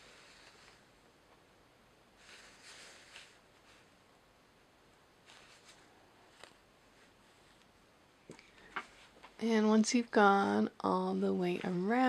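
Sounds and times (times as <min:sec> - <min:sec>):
needle drawn through fabric: 0:00.0 - 0:00.9, 0:02.2 - 0:03.9, 0:05.2 - 0:07.7
yarn rustling: 0:05.2 - 0:07.6.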